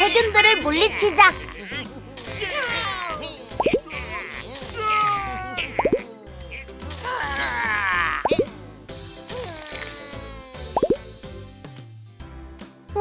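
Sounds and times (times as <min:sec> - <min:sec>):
children's background music: 0:00.0 - 0:13.0
cartoon plop sound effects: 0:03.6 - 0:03.8, 0:05.8 - 0:06.0, 0:08.2 - 0:08.5, 0:10.8 - 0:11.0.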